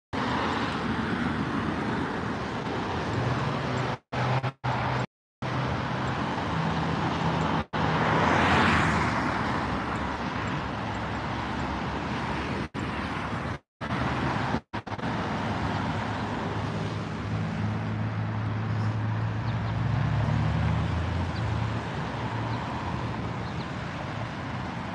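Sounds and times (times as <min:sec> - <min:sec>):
vehicle passing: 0:00.2 - 0:13.2, 0:13.9 - 0:24.9
road traffic going by: 0:00.2 - 0:24.9.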